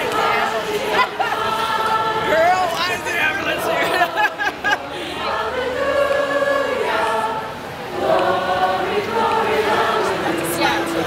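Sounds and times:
group singing long notes: 0.0s - 11.0s
street chatter: 0.0s - 11.0s.

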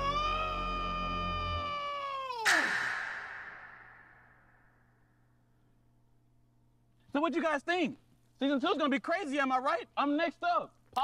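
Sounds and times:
loud noisy hit: 2.5s - 4.8s.

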